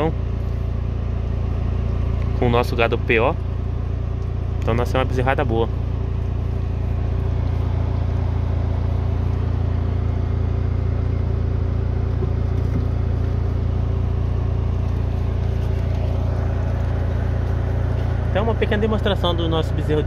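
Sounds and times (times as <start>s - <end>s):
engine idling rumble: 0.0s - 20.0s.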